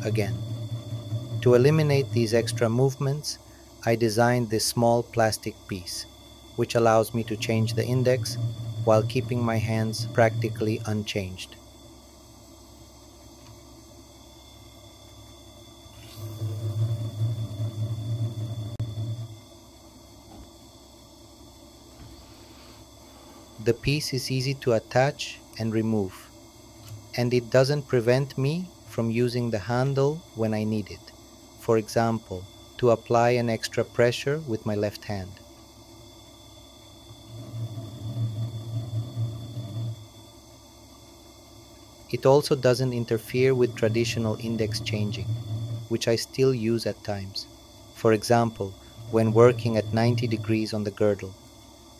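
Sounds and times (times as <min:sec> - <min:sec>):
gemstone rubbing on spinning lap: 0:00.0 - 0:03.0, 0:06.6 - 0:11.2, 0:15.8 - 0:19.4, 0:37.0 - 0:40.2, 0:42.2 - 0:46.8, 0:48.1 - 0:51.0
grinding machine rumbling: 0:00.0 - 0:12.0, 0:13.2 - 0:19.6, 0:31.6 - 0:51.8
spinning lap humming: 0:00.0 - 0:51.9.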